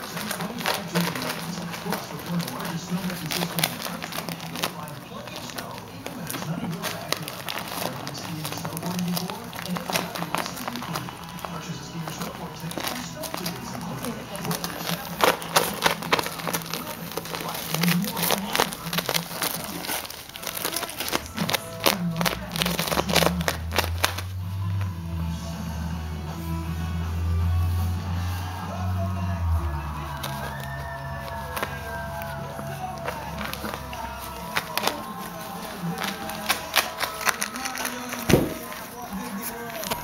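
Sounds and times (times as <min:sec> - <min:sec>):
paper crinkling and tearing: 0:00.0 - 0:24.9, 0:27.6 - 0:40.0
music with low bass: 0:24.3 - 0:31.2.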